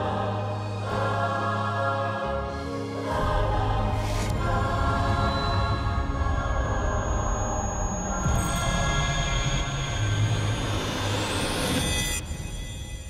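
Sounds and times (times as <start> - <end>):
choir singing sustained chords: 0.0 - 12.5.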